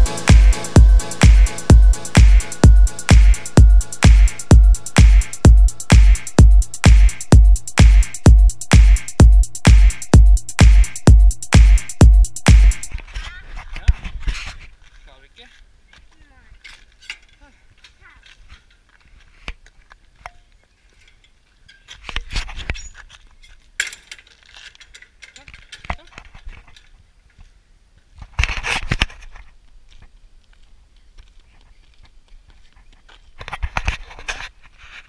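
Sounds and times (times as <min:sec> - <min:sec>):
dance music with steady beat: 0:00.0 - 0:12.9.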